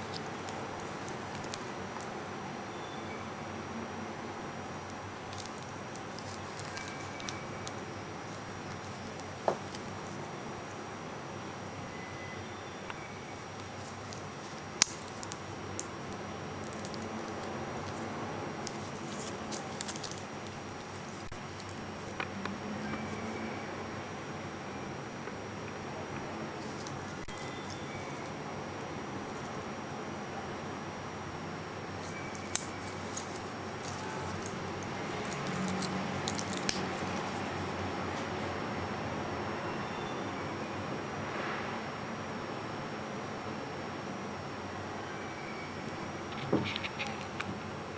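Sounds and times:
gloves rubbing: 0:00.0 - 0:02.2, 0:04.6 - 0:11.1, 0:13.0 - 0:23.4, 0:26.6 - 0:28.4, 0:32.0 - 0:37.9
steady low hiss: 0:00.0 - 0:47.9
watch bracelet links clicking: 0:32.0 - 0:37.3.

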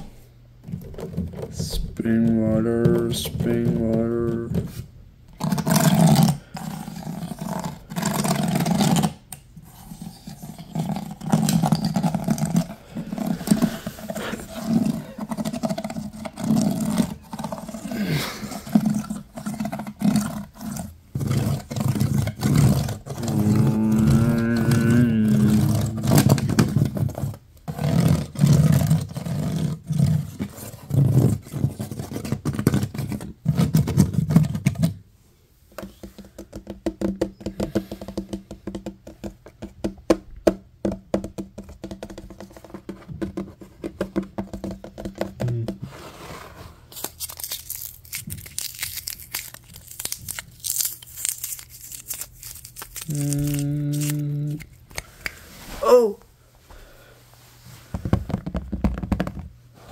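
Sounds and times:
fingers scraping ridged wood: 0:05.4 - 0:34.9
fingers tapping on plastic jug: 0:35.7 - 0:45.8, 0:58.0 - 0:59.5.

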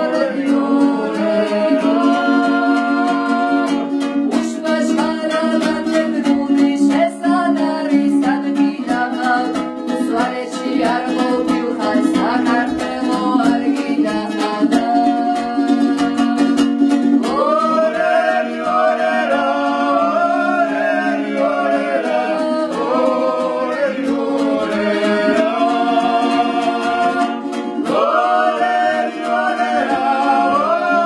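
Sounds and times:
person singing: 0:00.0 - 0:31.0.

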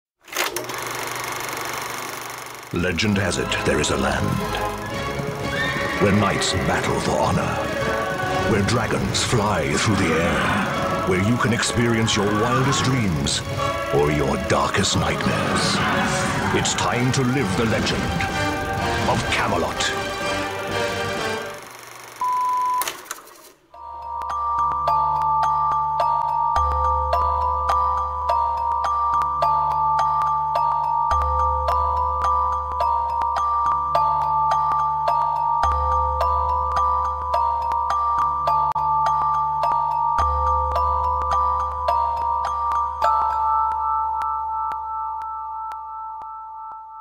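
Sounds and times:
music with low hum and ticking: 0:00.6 - 0:22.8, 0:23.6 - 0:47.0
short electronic beep: 0:22.2 - 0:22.9.

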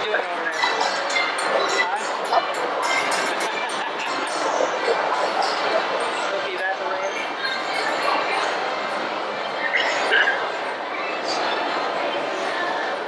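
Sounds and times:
indistinct voices: 0:00.0 - 0:13.0
steady background noise: 0:00.0 - 0:13.0.

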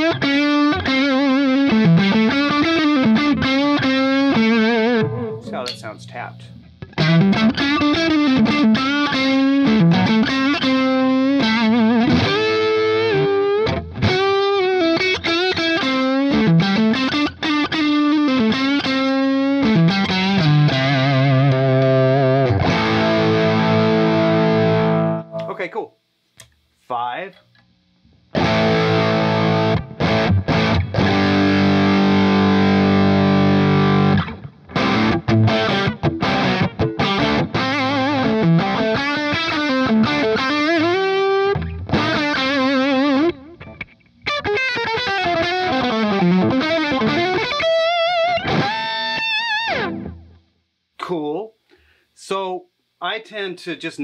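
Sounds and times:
distorted electric guitar chords: 0:00.0 - 0:25.8, 0:27.5 - 0:50.8
electric guitar lead lines: 0:00.0 - 0:25.9, 0:27.3 - 0:50.5.

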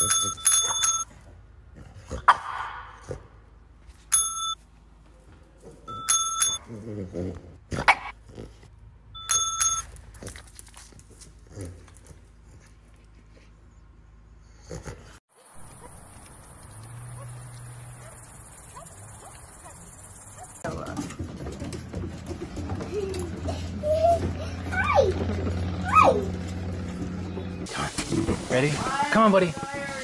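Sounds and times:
desk service bell ding: 0:00.0 - 0:01.0, 0:04.1 - 0:04.6, 0:05.9 - 0:06.6, 0:09.2 - 0:09.8.

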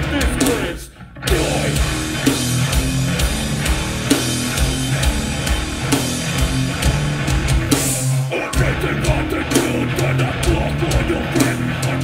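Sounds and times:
hardcore band playing: 0:00.0 - 0:12.0.

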